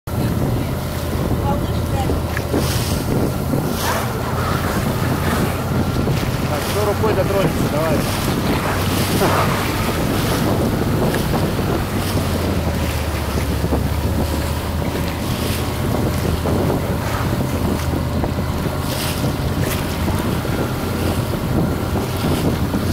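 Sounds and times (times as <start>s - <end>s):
boat engine running: 0.1s - 22.9s
sea water splashing: 0.1s - 22.9s
wind buffeting microphone: 0.1s - 22.9s.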